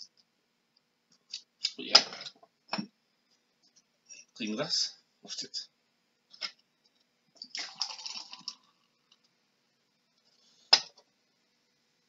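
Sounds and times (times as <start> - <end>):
fizzy drink pouring into glass: 7.4 - 9.2.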